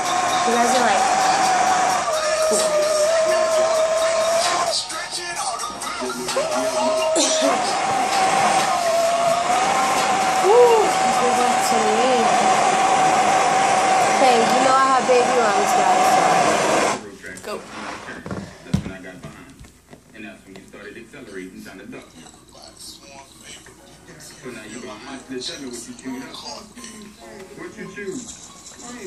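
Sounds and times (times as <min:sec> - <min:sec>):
butane torch hissing: 0:00.0 - 0:05.0, 0:05.7 - 0:18.8
soft voices: 0:00.0 - 0:12.3.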